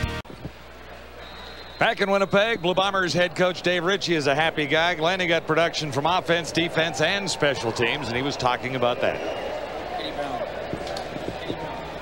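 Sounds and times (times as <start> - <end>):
stadium crowd din: 0.3 - 12.0.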